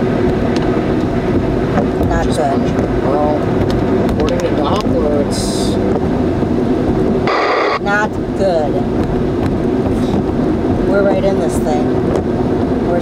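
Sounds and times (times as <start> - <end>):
car engine and tyre noise: 0.0 - 13.0.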